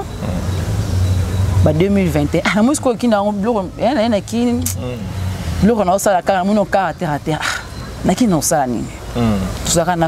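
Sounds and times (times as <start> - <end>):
vehicle engine humming: 0.0 - 10.0
woman talking: 1.6 - 4.8, 5.6 - 9.0, 9.6 - 10.0.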